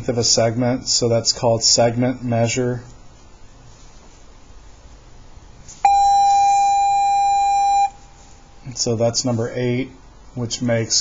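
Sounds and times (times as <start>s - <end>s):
loud electronic beep: 5.9s - 8.0s.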